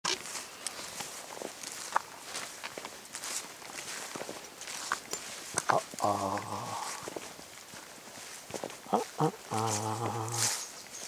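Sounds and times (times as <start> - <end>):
footsteps in grass: 0.0 - 11.0.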